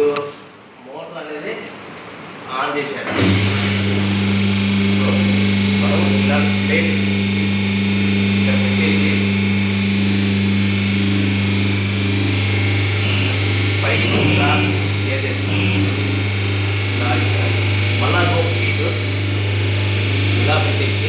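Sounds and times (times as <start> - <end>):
machine electric hum: 1.7 - 21.0.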